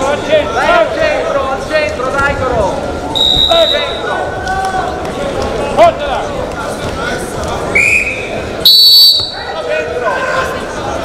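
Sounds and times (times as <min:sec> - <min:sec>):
shouting voices echoing in hall: 0:00.0 - 0:11.0
referee's whistle blast: 0:03.2 - 0:04.0, 0:07.8 - 0:09.5.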